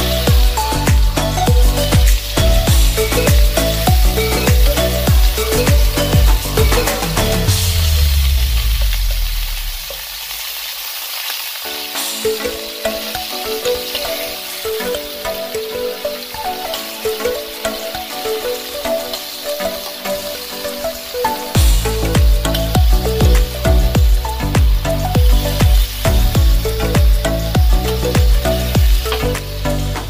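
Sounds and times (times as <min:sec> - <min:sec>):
background music: 0:00.0 - 0:09.4, 0:11.6 - 0:30.0
meat sizzling in hot oil: 0:00.0 - 0:30.0.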